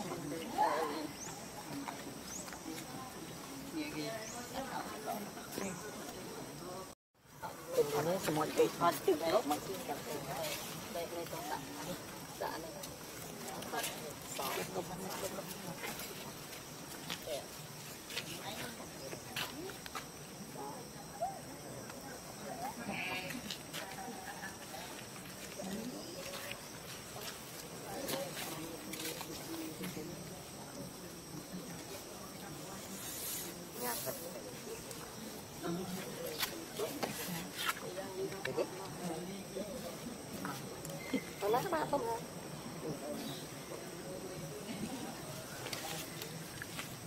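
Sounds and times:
faint indistinct voices: 0.0 - 47.0
steady background hiss: 0.0 - 47.0.

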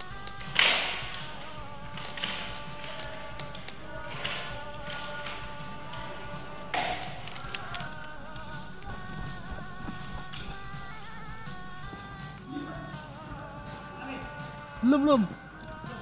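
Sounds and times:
background music: 0.0 - 16.0.

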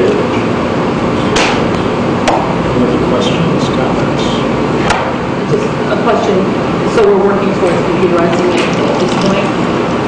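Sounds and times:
sharp knocks: 1.3 - 2.6.

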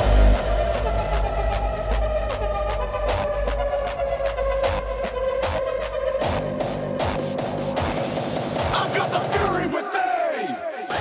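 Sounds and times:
kick drum and bass: 0.0 - 9.7
hardstyle dance music: 0.0 - 11.0.

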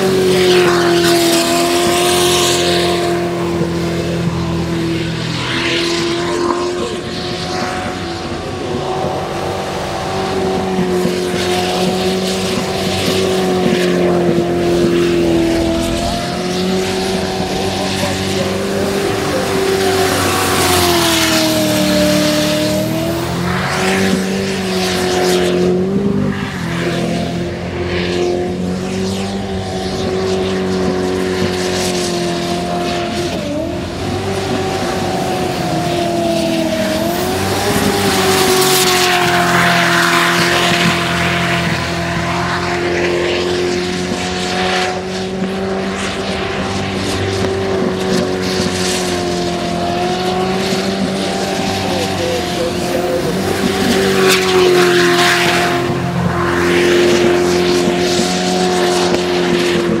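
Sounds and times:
boat engine at high revs: 0.0 - 60.0.

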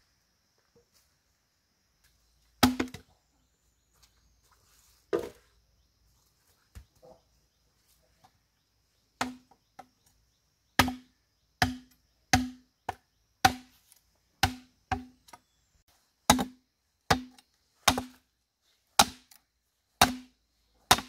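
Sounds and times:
machete chopping bamboo: 2.6 - 3.0, 9.2 - 9.6, 10.8 - 15.4, 16.3 - 18.3, 18.9 - 21.0.

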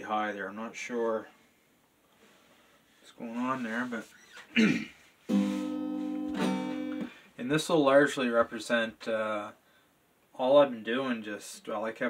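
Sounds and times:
person clearing throat: 4.5 - 5.0
acoustic guitar chord strummed: 5.3 - 7.2.

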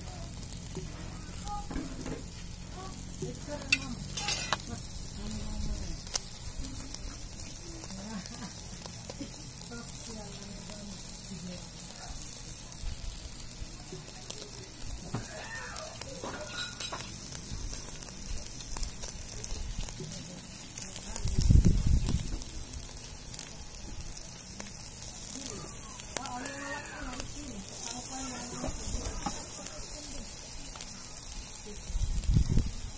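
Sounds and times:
chicken sizzling on a grill: 0.0 - 32.9.

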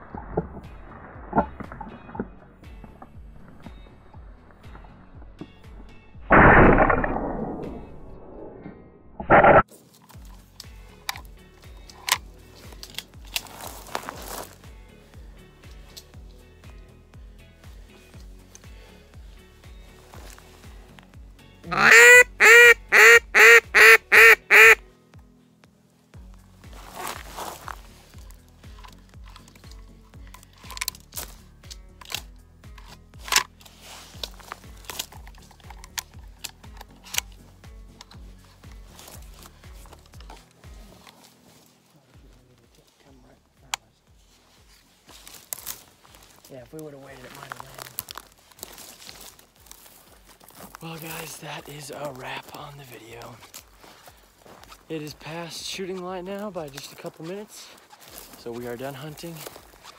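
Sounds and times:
quiet background music: 0.0 - 59.9
duck call quacks: 21.7 - 24.8.

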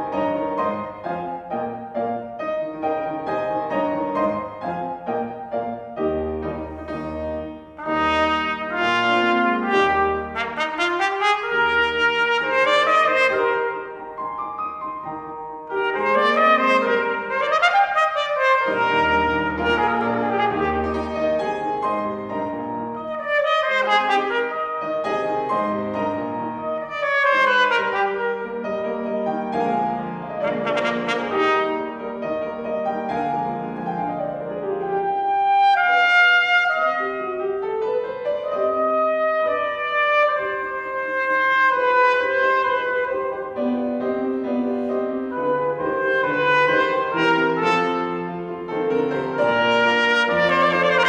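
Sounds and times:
piano accompaniment: 0.0 - 51.0
trumpet playing: 6.5 - 14.2, 15.6 - 29.7, 30.3 - 32.5, 34.8 - 37.7, 38.5 - 43.7, 45.3 - 51.0.

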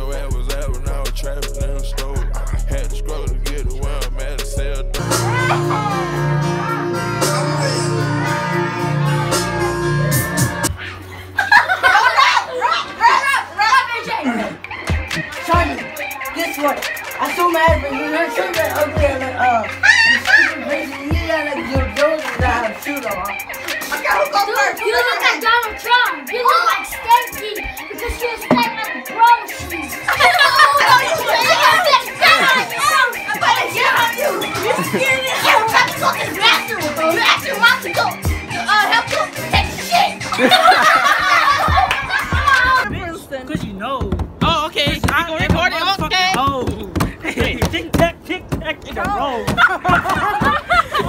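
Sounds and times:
music playing: 0.0 - 51.0
boys shouting and laughing: 5.0 - 51.0
children talking and calling out: 5.0 - 51.0.

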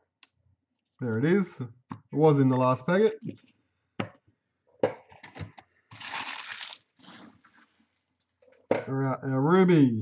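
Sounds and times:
papery rustle of cards: 6.0 - 7.3.

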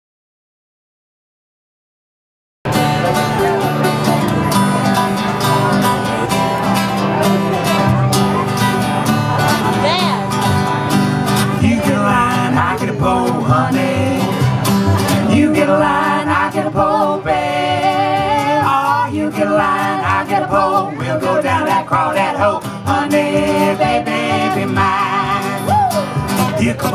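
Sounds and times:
strummed acoustic guitar: 2.7 - 26.9
upright bass: 2.7 - 26.9
person singing: 11.5 - 26.9.

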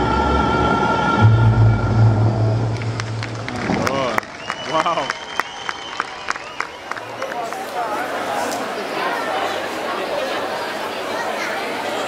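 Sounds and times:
crowd clapping: 2.7 - 8.8
people's voices: 6.9 - 12.0.

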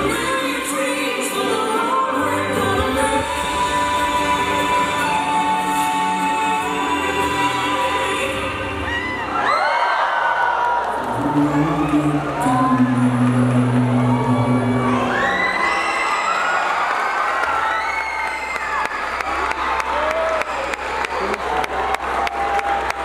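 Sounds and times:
audience screaming and cheering: 0.0 - 23.0
clapping: 16.8 - 23.0.

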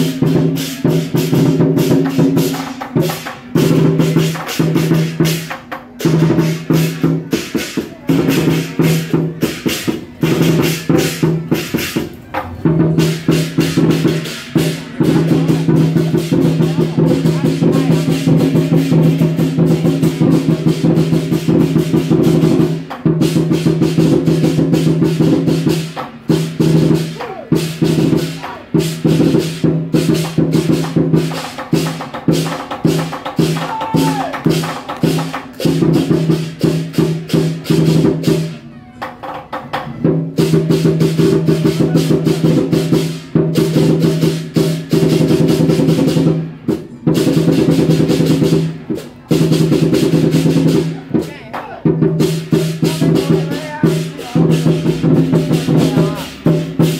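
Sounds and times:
clashing cymbals: 0.0 - 38.6
large drum beaten in rolls: 0.0 - 56.9.

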